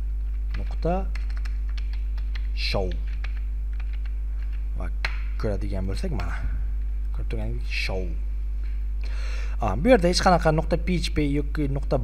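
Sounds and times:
low electrical hum: 0.0s - 12.0s
keyboard key clicks: 0.5s - 5.2s.

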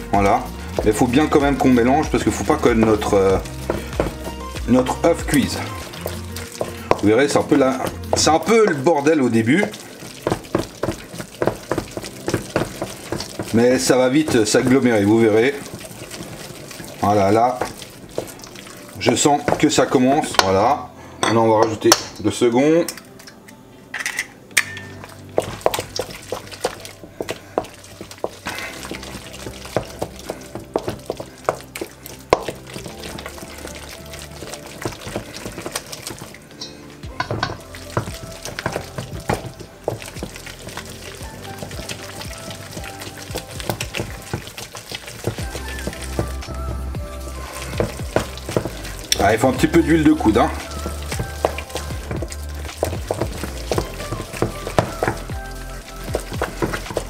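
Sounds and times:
background music: 0.0s - 57.0s.

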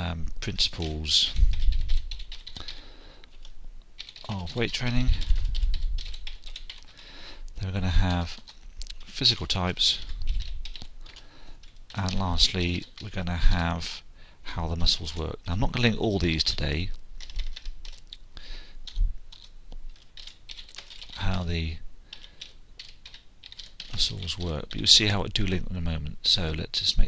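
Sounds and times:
typing on computer keyboard: 1.3s - 2.8s, 3.4s - 7.0s, 9.8s - 13.1s, 17.2s - 18.2s, 18.8s - 21.3s, 22.1s - 24.8s.

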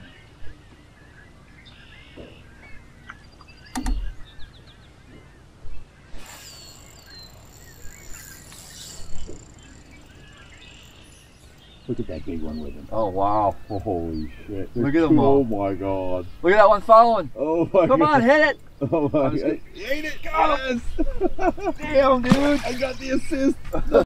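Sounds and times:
faint bird calls: 0.0s - 17.1s
falling whistle-like calls: 6.2s - 9.6s.

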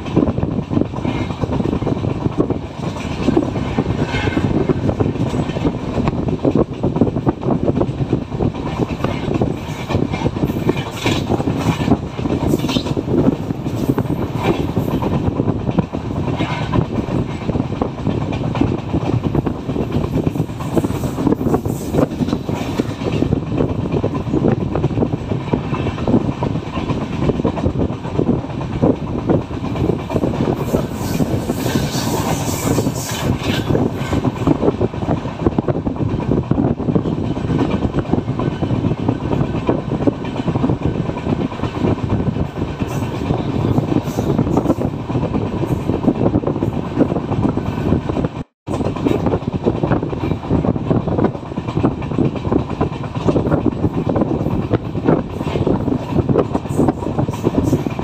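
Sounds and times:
train wheels rumbling on rails: 0.0s - 58.0s
wheels clickety-clack over rail joints: 0.0s - 58.0s.

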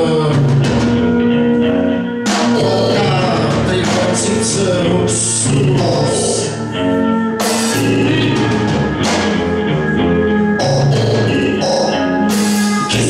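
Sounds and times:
live band music: 0.0s - 13.0s.

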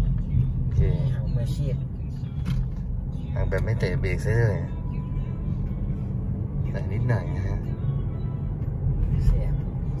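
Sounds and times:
car engine and tyres rumbling: 0.0s - 10.0s
car stereo music: 0.0s - 10.0s.

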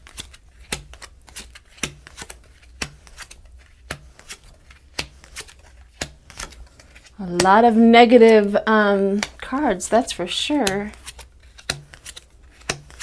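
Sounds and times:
cards laid down with snap: 0.0s - 6.6s, 9.2s - 9.4s, 10.9s - 13.0s
card rustles: 0.0s - 13.0s.

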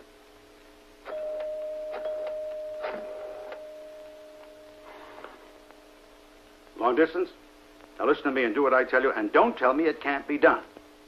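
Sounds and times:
steady telephone tone: 1.0s - 5.8s.

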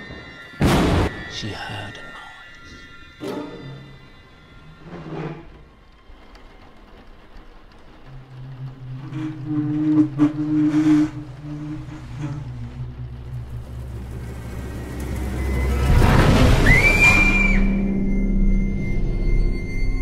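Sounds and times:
steady low rumble: 6.6s - 20.0s
low droning tone: 8.1s - 20.0s.

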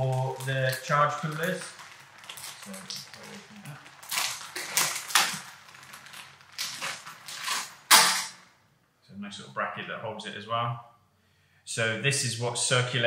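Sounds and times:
plastic packaging crinkling: 0.0s - 8.5s.

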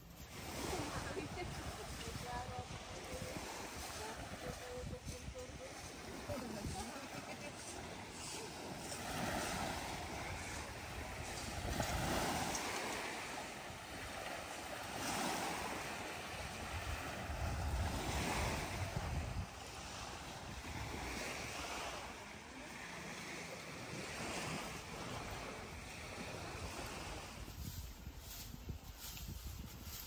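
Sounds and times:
wind gusting on microphone: 0.0s - 22.3s, 23.8s - 30.0s
waves washing on rocky shore: 0.2s - 27.6s.

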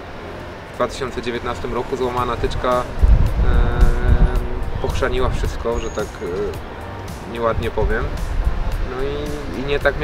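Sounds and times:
held music chord: 0.0s - 10.0s.

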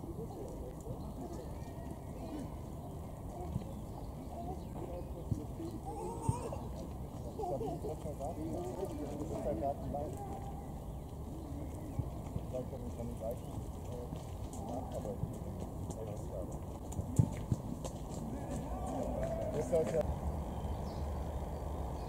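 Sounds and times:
indistinct voices murmuring: 0.0s - 20.2s.

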